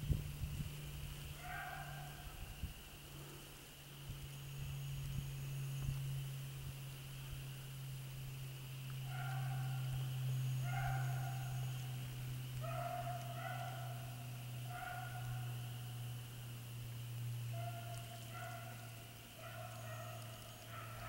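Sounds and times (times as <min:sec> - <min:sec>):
steady low hum: 0:00.0 - 0:21.0
hounds baying: 0:01.3 - 0:02.4, 0:09.0 - 0:16.3, 0:17.3 - 0:21.0.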